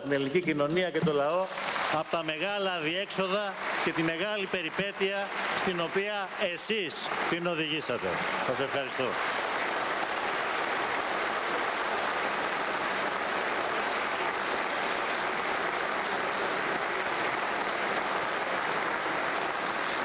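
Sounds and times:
crowd applause: 0.0s - 20.0s.

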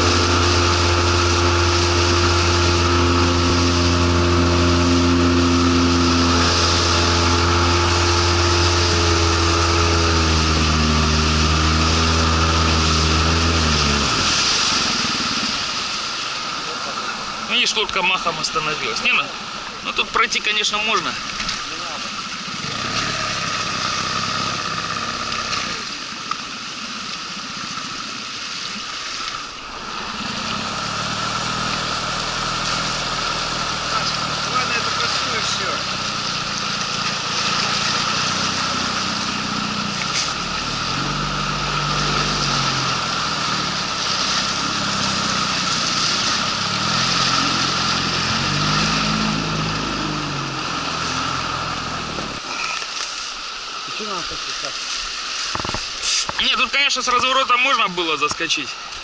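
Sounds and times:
outboard motor running under load: 0.0s - 59.0s
water rushing: 0.0s - 59.0s.

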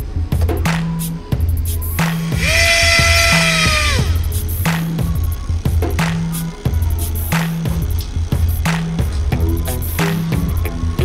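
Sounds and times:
background music with a beat: 0.0s - 11.0s
small motor propeller whine: 2.4s - 4.4s.

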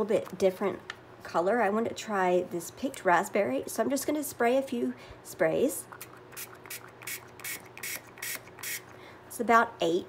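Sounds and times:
spray bottle spraying: 6.0s - 8.9s.

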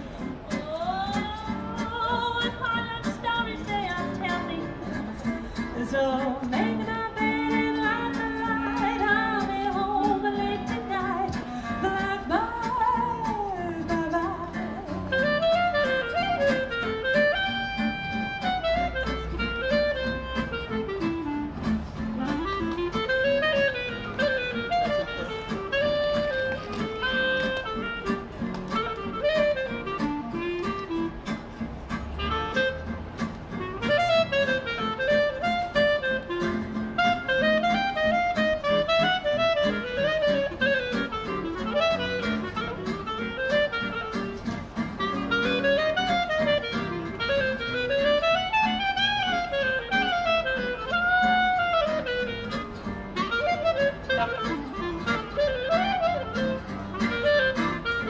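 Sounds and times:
strummed acoustic guitar: 0.0s - 58.0s
clarinet solo melody: 6.6s - 13.6s, 14.2s - 58.0s.

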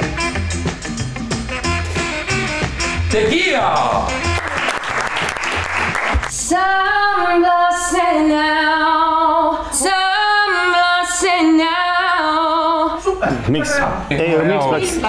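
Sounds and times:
people clapping: 4.2s - 6.4s
woman singing unaccompanied: 6.3s - 13.2s.

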